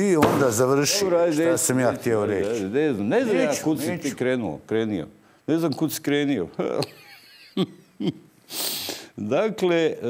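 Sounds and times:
man breathing: 0:08.5 - 0:09.2
sharp hissing breath in: 0:08.5 - 0:09.2.

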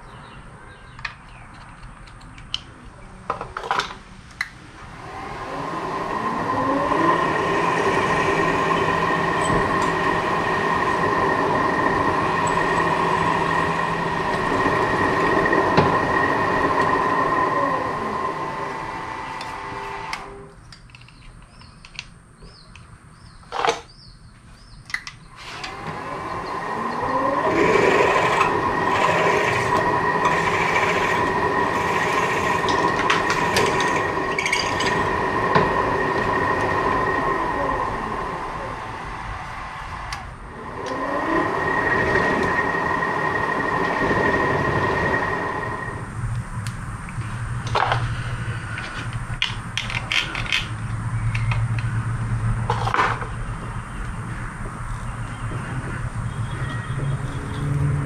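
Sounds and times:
milling machine motor whine: 0:04.8 - 0:20.6, 0:25.4 - 0:58.0
drill boring into steel: 0:05.0 - 0:20.5, 0:25.4 - 0:46.1.

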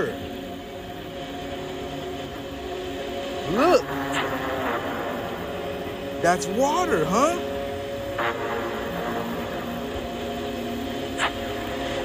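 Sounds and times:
ambient drone music: 0:00.0 - 0:12.0.

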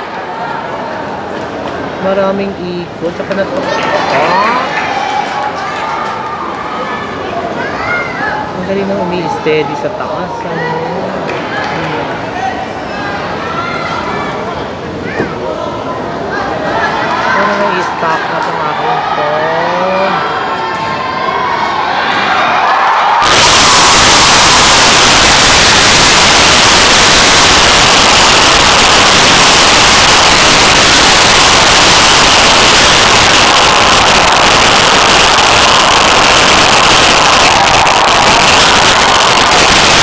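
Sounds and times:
crowd cheering: 0:00.0 - 0:02.0, 0:03.0 - 0:14.5, 0:15.1 - 0:40.0
crowd voices: 0:00.0 - 0:40.0.

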